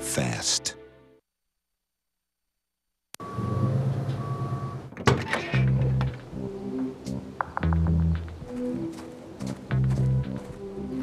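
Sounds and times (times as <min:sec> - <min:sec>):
reversing alarm beeping: 0:03.2 - 0:04.9.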